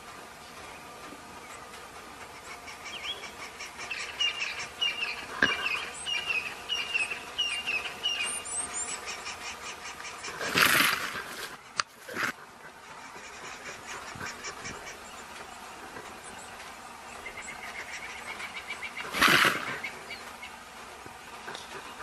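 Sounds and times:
bird chirping: 0.4 - 11.9, 12.6 - 20.7.

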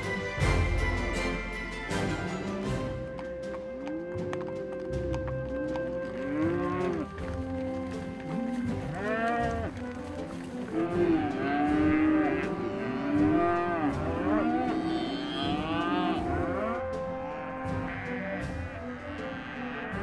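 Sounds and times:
cattle mooing: 5.6 - 7.1, 8.4 - 9.8, 10.7 - 20.0.

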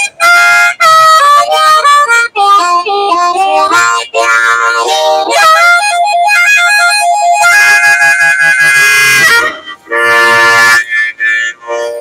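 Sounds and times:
harmonica chords: 0.0 - 12.0.

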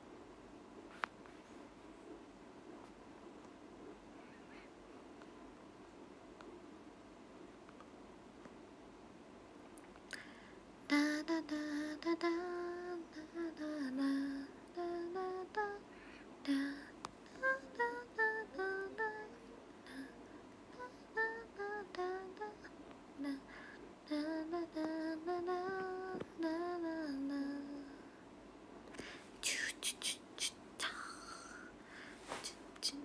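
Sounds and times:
woman whispering: 4.2 - 4.8, 29.4 - 31.7
woman humming: 16.5 - 23.4, 29.4 - 31.7, 32.4 - 33.0.

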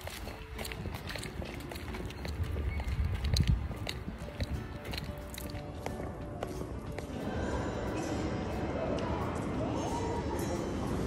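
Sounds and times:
footsteps clicking on pavement: 0.0 - 7.2
wind rumble on microphone: 0.6 - 5.2.

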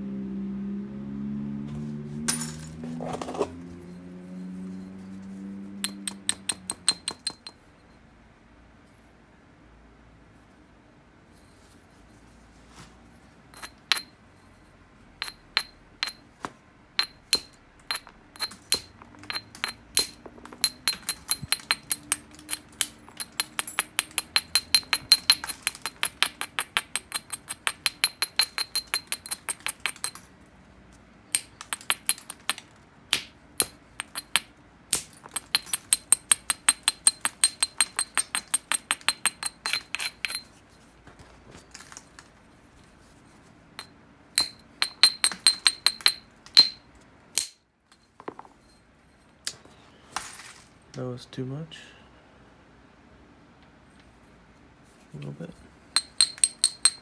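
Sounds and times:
stone scratching on glassy stone: 36.9 - 40.6.

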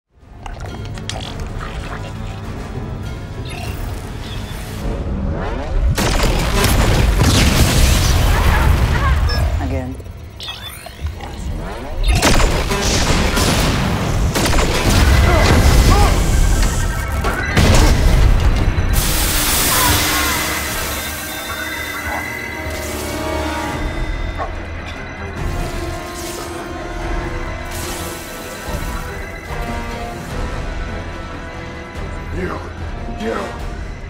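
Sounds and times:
dramatic orchestral score: 0.2 - 34.0.

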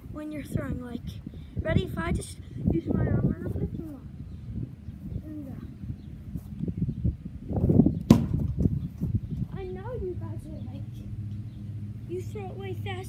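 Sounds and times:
sharp smack: 8.1 - 8.7.

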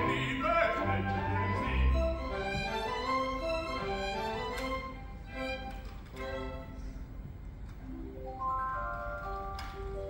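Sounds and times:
orchestra playing: 0.0 - 10.0.

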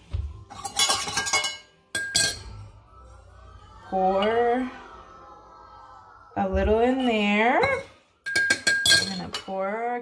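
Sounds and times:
glass kitchenware clinking: 0.5 - 2.6, 7.1 - 9.7.

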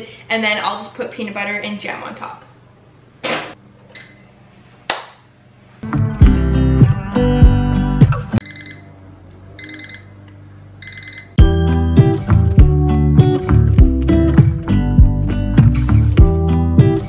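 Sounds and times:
toaster oven beep and click: 3.9 - 4.3, 8.4 - 9.0, 9.6 - 11.6
background music: 5.8 - 8.5, 11.4 - 17.0
high alarm beeps: 8.4 - 9.0, 9.6 - 10.2, 10.8 - 11.4.

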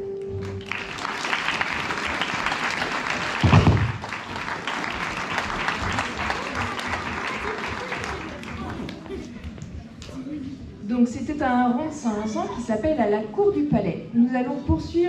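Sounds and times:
audience applauding: 0.4 - 9.6
loud low thump: 3.4 - 4.0.

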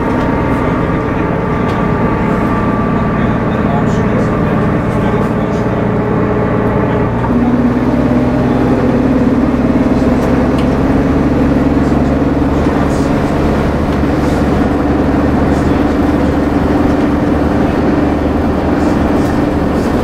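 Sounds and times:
bus engine drone: 0.0 - 20.0.

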